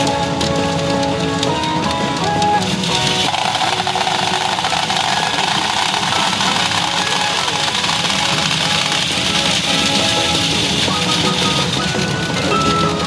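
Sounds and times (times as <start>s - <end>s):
dense steady clatter: 0.0s - 13.0s
pachinko machine music and effects: 0.0s - 13.0s.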